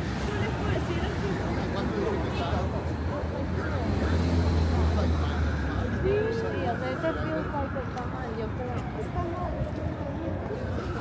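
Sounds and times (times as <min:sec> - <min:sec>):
passersby talking: 0:00.0 - 0:11.0.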